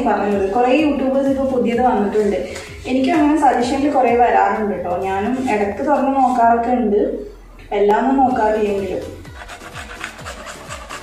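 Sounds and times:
background music with steady beat: 0:00.0 - 0:11.0
beetroot grating on plastic grater: 0:09.2 - 0:11.0.

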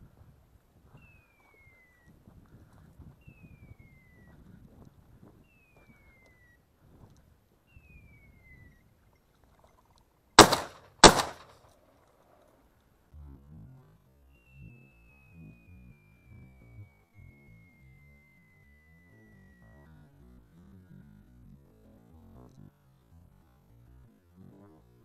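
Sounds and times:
shotgun shots: 0:10.4 - 0:11.6.

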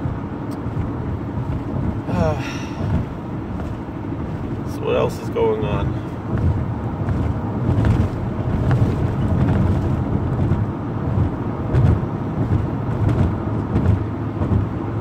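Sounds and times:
car interior engine and road drone: 0:00.0 - 0:15.0.

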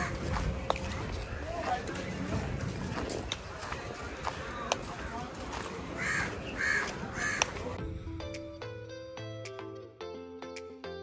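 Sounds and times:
street noise: 0:00.0 - 0:10.7
crow cawing: 0:06.0 - 0:07.5
background music sustained notes: 0:07.8 - 0:11.0.

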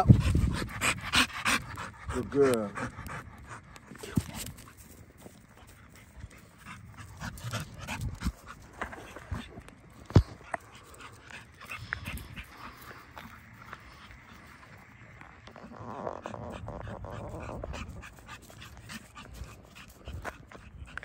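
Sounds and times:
dog panting: 0:00.0 - 0:21.0.

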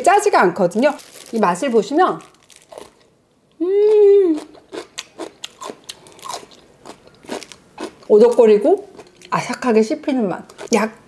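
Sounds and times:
crisp chewing crunches: 0:00.9 - 0:03.1, 0:03.9 - 0:09.4
person humming: 0:03.6 - 0:04.5.

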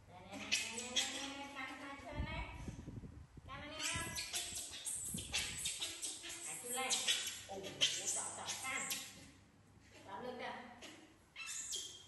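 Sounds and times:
baby monkey whining calls: 0:00.3 - 0:01.6, 0:03.8 - 0:09.2, 0:11.4 - 0:12.0.

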